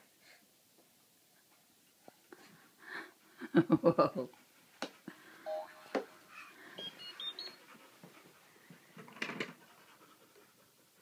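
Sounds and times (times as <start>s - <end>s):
brief high tones: 5.5s - 6.0s
dog panting: 6.2s - 11.0s.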